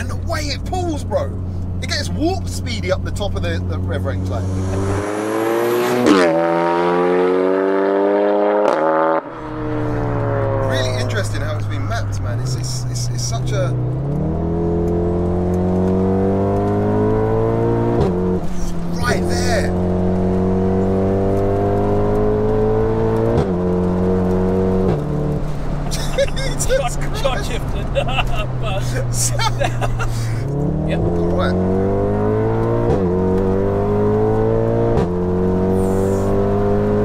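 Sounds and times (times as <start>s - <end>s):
car engine at full throttle: 0.0s - 37.0s.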